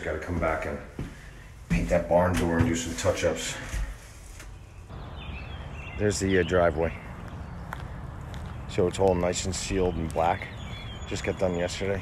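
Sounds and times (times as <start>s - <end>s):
bird calling: 2.7s - 12.0s.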